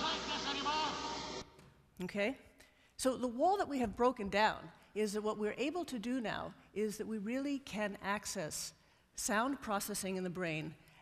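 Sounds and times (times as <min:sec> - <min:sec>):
degraded man's voice: 0:00.0 - 0:01.2.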